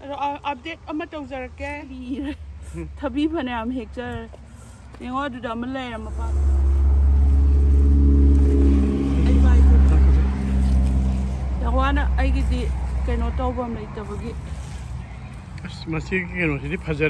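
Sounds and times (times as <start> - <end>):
vehicle engine droning: 2.7 - 17.0.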